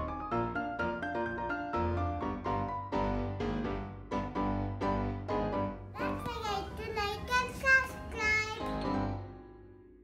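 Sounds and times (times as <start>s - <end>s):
background music: 0.0s - 10.0s
girl speaking or singing: 6.0s - 8.8s.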